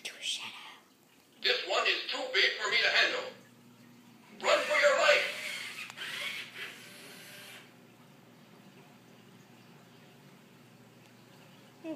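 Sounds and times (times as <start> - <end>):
toy robot gear motors whirring: 4.5 - 7.7.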